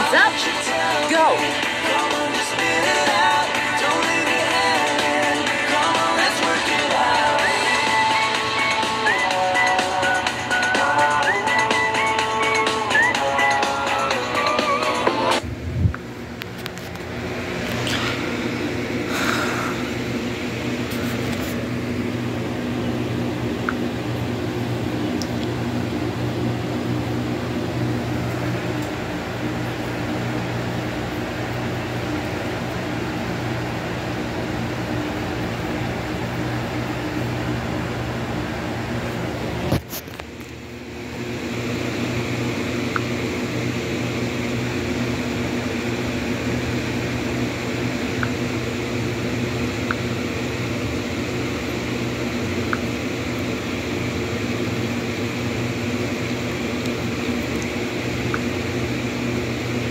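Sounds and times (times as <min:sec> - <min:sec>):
steady mechanical hum: 0:00.0 - 0:59.9.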